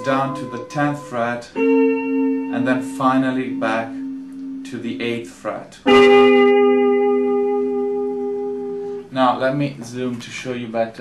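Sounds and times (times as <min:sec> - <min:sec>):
electric guitar notes ringing: 0:00.0 - 0:09.2.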